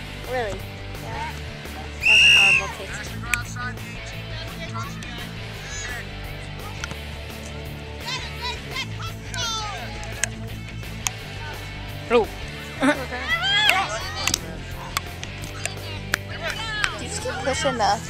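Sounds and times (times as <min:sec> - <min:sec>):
high voices: 0:00.0 - 0:18.0.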